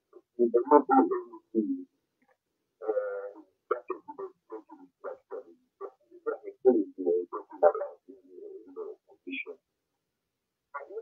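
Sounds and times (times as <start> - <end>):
person talking over phone line: 0.1 - 1.9, 2.8 - 5.5, 6.1 - 9.6, 10.8 - 11.0.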